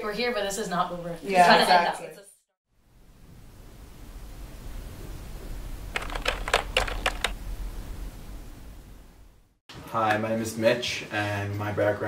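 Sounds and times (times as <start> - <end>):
keyboard typing clicks: 6.0 - 7.4.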